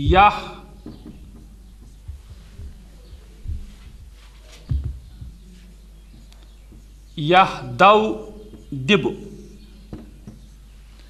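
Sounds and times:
electrical hum: 0.0 - 11.0
soft low thumps: 0.0 - 11.0.

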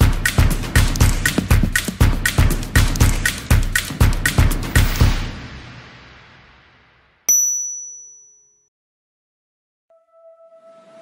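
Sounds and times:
music: 0.0 - 6.8, 9.9 - 11.0
bright high-pitched ding: 7.3 - 8.7.

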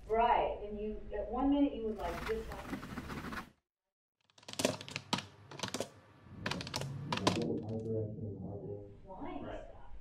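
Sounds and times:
low hum: 6.1 - 10.0.

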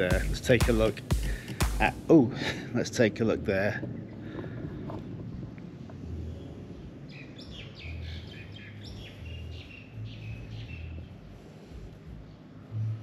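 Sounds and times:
birds chirping: 0.0 - 2.1, 3.5 - 13.0
low thumps: 0.0 - 2.1.

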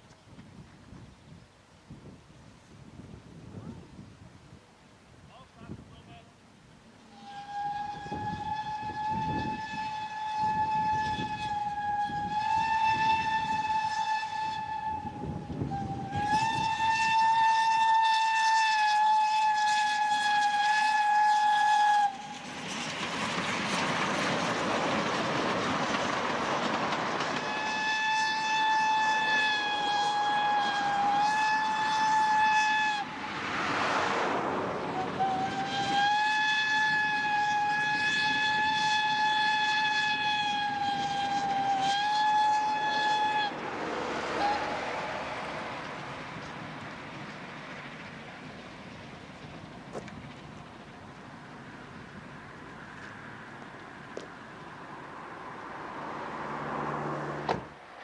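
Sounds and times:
steam engine exhaust beats: 5.9 - 58.0
steam locomotive whistle blasts: 7.0 - 23.2, 27.2 - 46.6
train coaches rumbling and clattering: 19.7 - 56.8.

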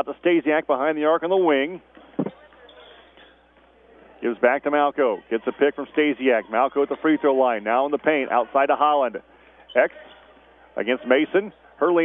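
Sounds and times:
faint murmur of voices: 1.1 - 12.0.

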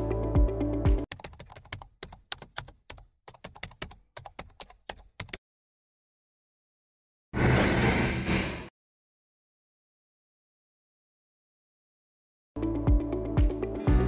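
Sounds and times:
background music with beat: 0.0 - 1.1, 12.6 - 14.0
keyboard typing clicks: 1.1 - 5.4.

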